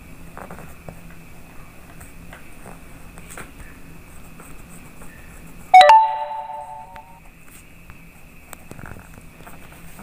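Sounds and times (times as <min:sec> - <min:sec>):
chime ringing: 0:05.8 - 0:07.1.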